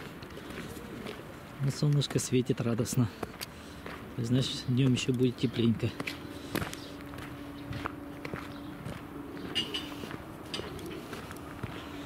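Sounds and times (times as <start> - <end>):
faint steady hum: 0.0 - 12.0
footsteps on hard ground: 0.0 - 12.0.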